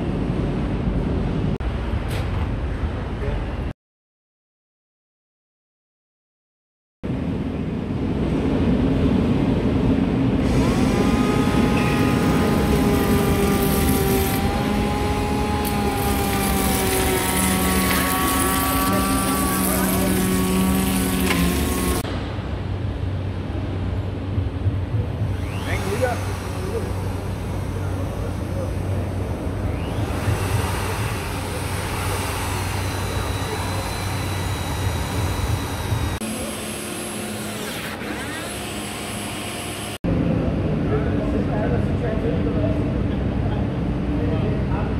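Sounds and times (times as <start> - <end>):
drill driving screw into wood: 10.4 - 22.0, 25.4 - 28.4, 29.7 - 40.0
electric tool whining: 10.4 - 22.1, 25.2 - 40.0.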